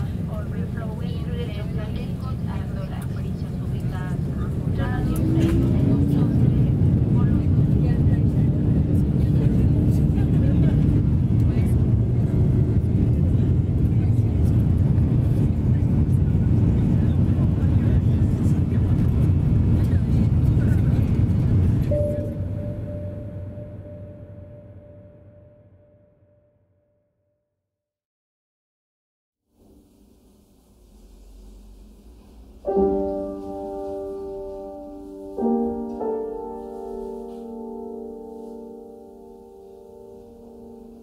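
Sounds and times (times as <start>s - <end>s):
vehicle rumble: 0.0s - 25.4s
steady low hum: 0.0s - 25.8s.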